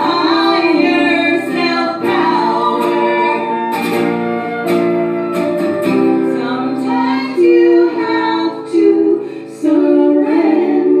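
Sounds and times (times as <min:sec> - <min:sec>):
flute playing: 0:00.0 - 0:08.5
acoustic guitar: 0:00.0 - 0:11.0.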